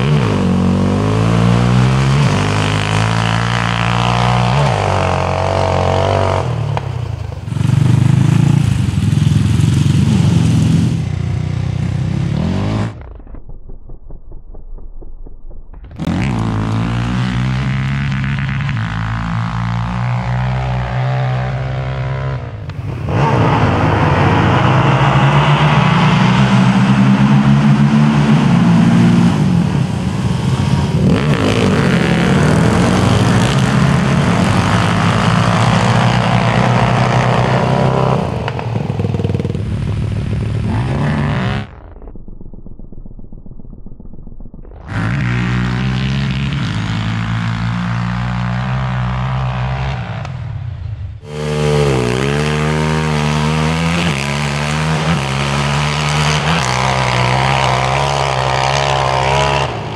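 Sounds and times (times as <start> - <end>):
quad revving sharply: 0.0 - 13.0, 16.0 - 41.9, 44.8 - 50.6, 51.2 - 59.9
quad engines at full throttle: 0.0 - 13.4, 15.8 - 43.4, 44.6 - 59.9.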